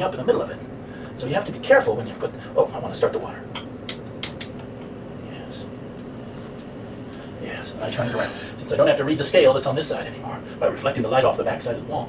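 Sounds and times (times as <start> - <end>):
spark igniter clicking: 3.9 - 4.7.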